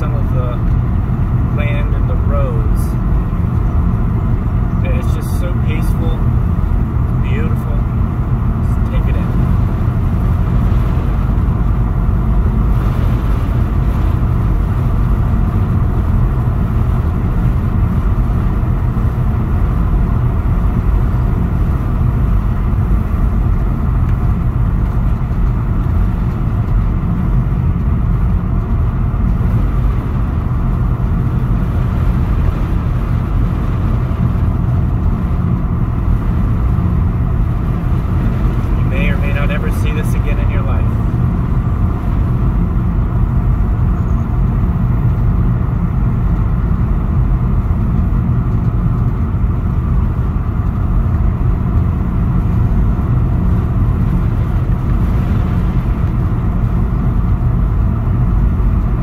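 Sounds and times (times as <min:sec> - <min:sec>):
car engine: 0:00.0 - 0:59.0.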